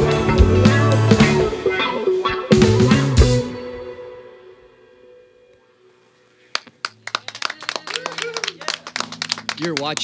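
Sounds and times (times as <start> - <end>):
people clapping: 6.5 - 10.0.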